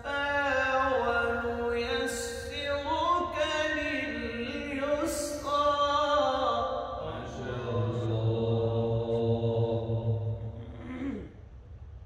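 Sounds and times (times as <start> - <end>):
man reciting melodically: 0.0 - 10.5.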